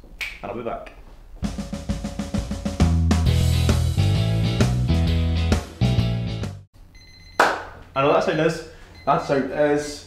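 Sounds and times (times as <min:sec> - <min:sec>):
background music: 0:01.4 - 0:06.7.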